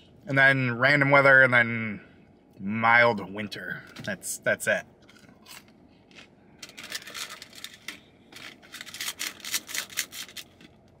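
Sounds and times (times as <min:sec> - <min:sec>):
person chewing crunchy food: 0:05.0 - 0:10.8.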